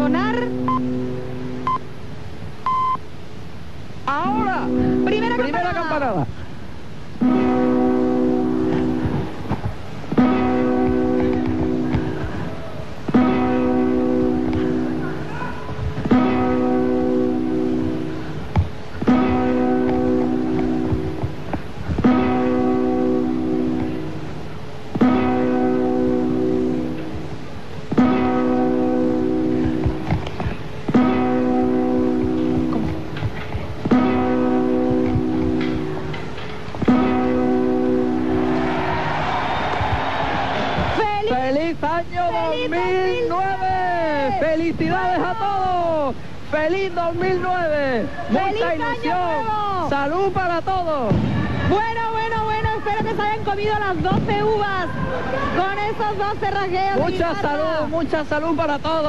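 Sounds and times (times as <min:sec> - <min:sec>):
strummed guitar chord: 0:04.2 - 0:05.9, 0:07.2 - 0:09.4, 0:10.1 - 0:12.5, 0:13.1 - 0:15.4, 0:16.0 - 0:38.7.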